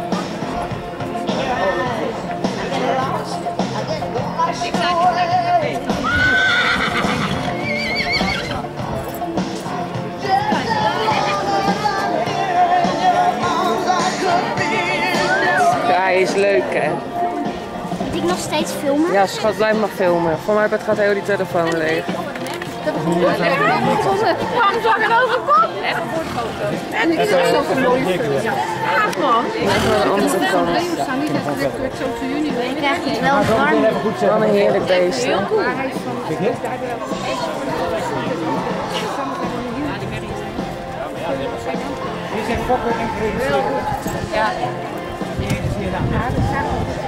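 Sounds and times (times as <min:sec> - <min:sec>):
background music: 0:00.0 - 0:47.0
horse whinnying: 0:05.9 - 0:08.7, 0:26.0 - 0:26.8, 0:29.6 - 0:30.3
people chatting: 0:18.0 - 0:47.0.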